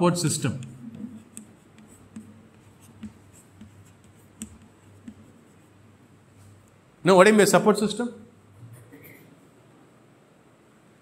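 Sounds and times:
chalk tapping on board: 0.4 - 5.8
chalk scraping on chalkboard: 0.6 - 5.9.

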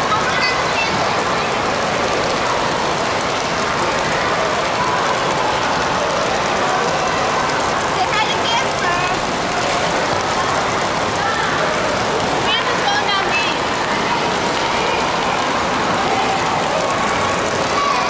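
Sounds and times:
babble of voices: 0.0 - 18.0
children's voices: 0.0 - 18.0
water pouring and splashing: 0.0 - 18.0.

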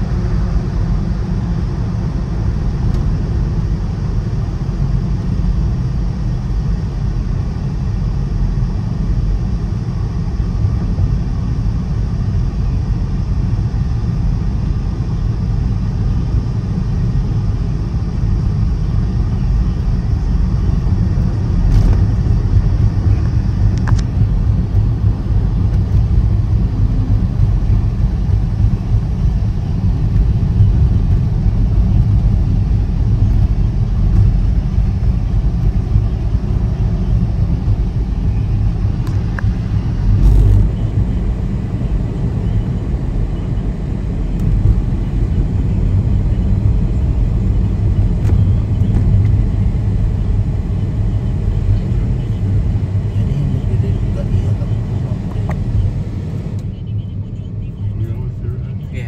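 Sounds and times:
road and engine rumble in car: 0.0 - 59.0.

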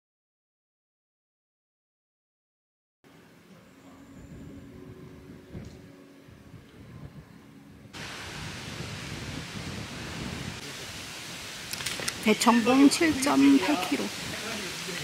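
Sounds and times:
light rain on leaves: 8.0 - 15.0
raindrop taps: 11.7 - 12.4.

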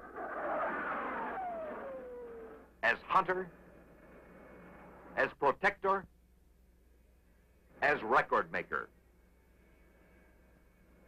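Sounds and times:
jet flying past: 0.0 - 2.7.

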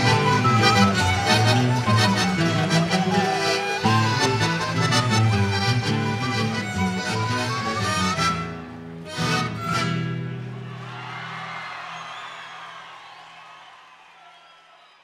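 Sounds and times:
mandolins guitars and accordions: 0.0 - 10.9.

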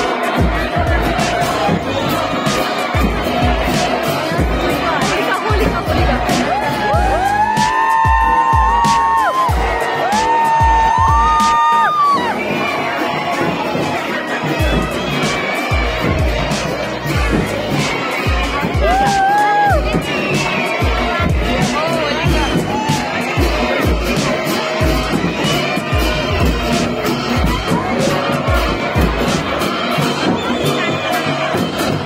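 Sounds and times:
crowd cheering: 0.0 - 32.0
drums beating: 0.0 - 32.0.

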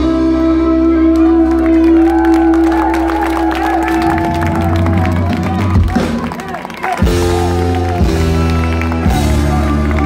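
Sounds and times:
live band music: 0.0 - 10.0
audience cheering and clapping: 1.1 - 10.0.

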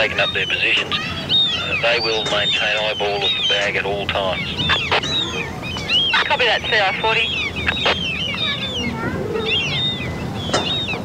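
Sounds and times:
birds chirping and squawking: 0.0 - 11.0.

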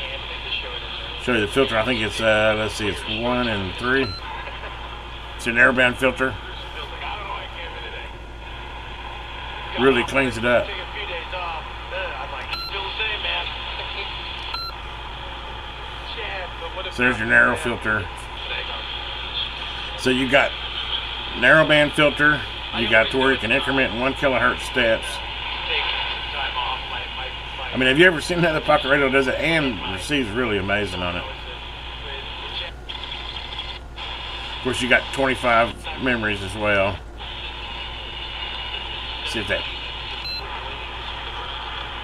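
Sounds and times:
radio talk through small speaker: 0.0 - 8.2, 9.5 - 14.6, 16.0 - 42.0
background hiss and hum: 0.0 - 42.0
short beeps: 12.6 - 12.8, 14.6 - 14.8.

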